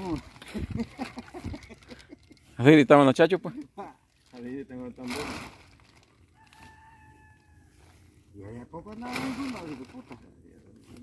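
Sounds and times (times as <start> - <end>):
rooster crowing faintly: 6.2 - 8.2.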